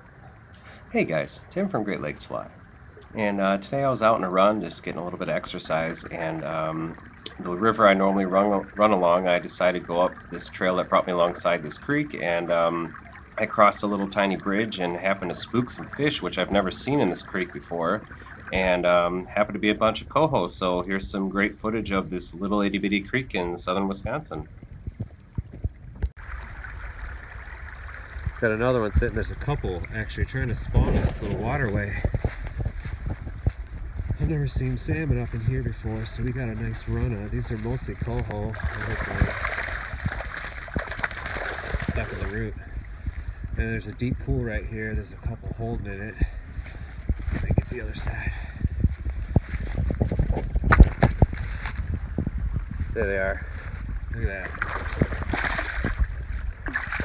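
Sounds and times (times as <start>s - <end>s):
creek water running: 0.0s - 57.0s
wind buffeting microphone: 24.0s - 57.0s
short low thumps: 28.1s - 57.0s
microphone handling knocks: 30.7s - 34.3s, 48.6s - 53.0s
footsteps through dry grass: 30.9s - 38.7s, 46.4s - 47.8s, 48.9s - 54.0s.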